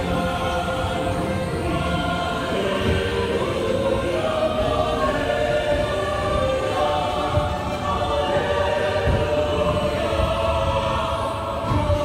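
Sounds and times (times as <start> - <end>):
choir holding long chords: 0.0 - 12.0.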